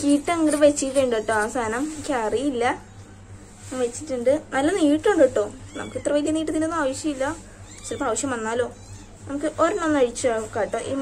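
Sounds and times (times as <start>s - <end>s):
person speaking: 0.0s - 2.7s
cat meowing: 5.7s - 6.2s, 7.6s - 9.2s.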